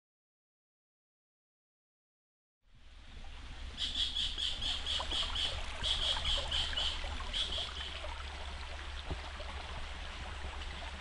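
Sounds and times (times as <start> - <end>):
rapid high animal chirping: 3.8 - 7.9.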